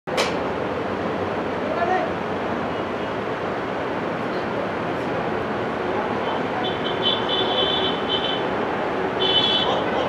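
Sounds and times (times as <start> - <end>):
outdoor background noise: 0.1 - 10.0.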